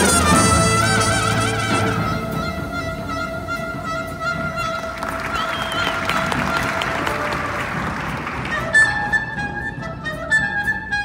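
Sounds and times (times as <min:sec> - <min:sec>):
clarinet holding long note: 0:00.0 - 0:07.8
soft jazz band: 0:00.0 - 0:11.0.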